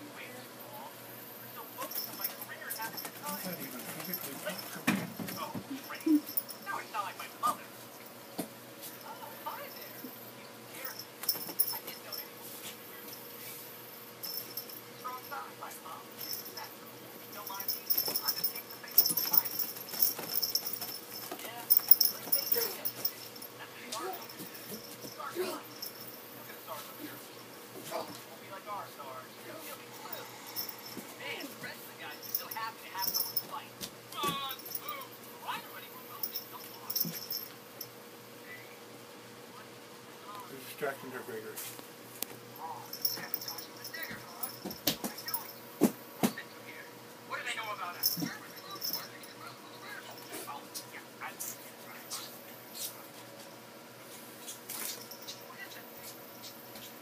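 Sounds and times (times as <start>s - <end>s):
collar tag jingling: 1.6s - 28.4s, 29.0s - 38.0s, 42.3s - 46.1s, 47.6s - 52.9s, 54.4s - 57.0s.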